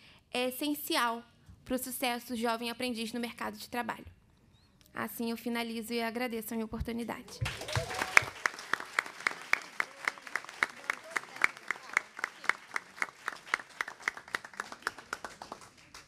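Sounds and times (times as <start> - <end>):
crowd applauding: 7.3 - 16.0
hands clapping sharply close by: 7.4 - 16.0.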